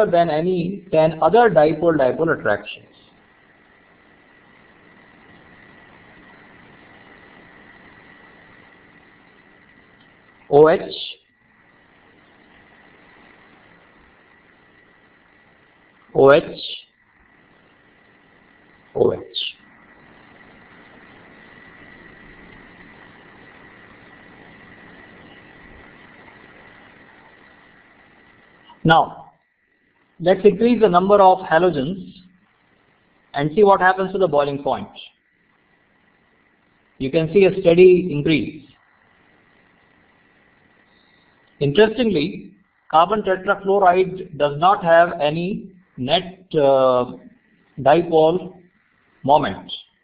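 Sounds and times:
faint recording hiss: 0:00.0 - 0:50.0
thin steady whine: 0:00.0 - 0:50.0.

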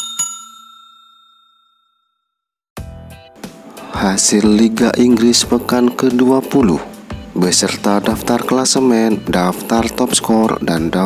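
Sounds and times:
notification bell ding: 0:00.0 - 0:02.0.

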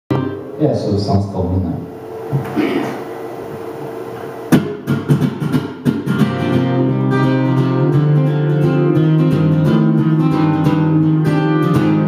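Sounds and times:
acoustic guitar strumming: 0:00.1 - 0:00.6, 0:04.4 - 0:12.0.

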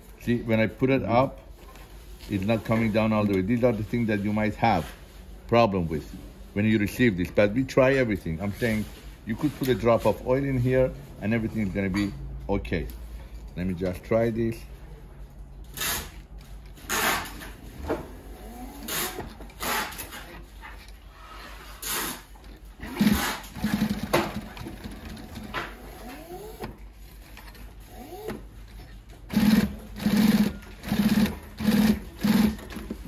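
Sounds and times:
sewing machine stitching in bursts: 0:18.3 - 0:20.2, 0:21.8 - 0:26.7, 0:29.2 - 0:33.0.

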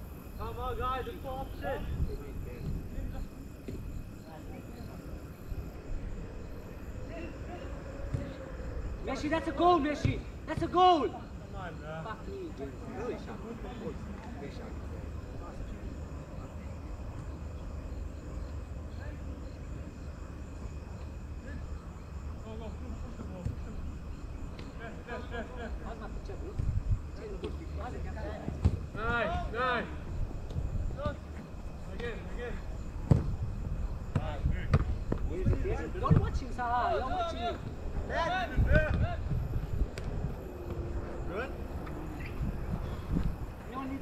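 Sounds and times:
ball being kicked: 0:34.1 - 0:36.4
steady low rumble: 0:37.6 - 0:44.0.

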